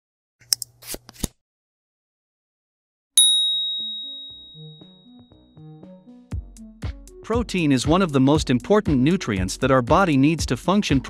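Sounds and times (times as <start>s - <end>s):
high-pitched ding: 3.2s - 5.2s
soft low music notes: 5.8s - 11.0s.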